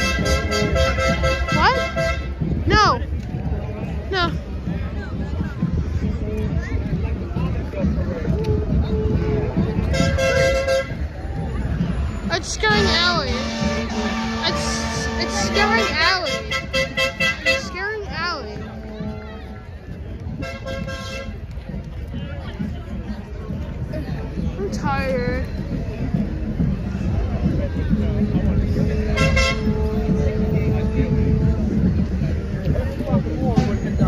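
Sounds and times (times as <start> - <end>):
horn tooting short blasts: 0.0 - 2.4, 8.9 - 11.0, 12.7 - 17.8, 29.1 - 29.8
outdoor crowd noise: 0.0 - 34.0.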